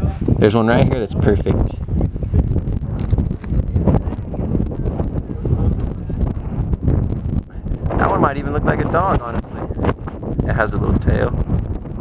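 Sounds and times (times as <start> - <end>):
wind rumbling on microphone: 0.0 - 12.0
footsteps on rocky ground: 2.0 - 8.4.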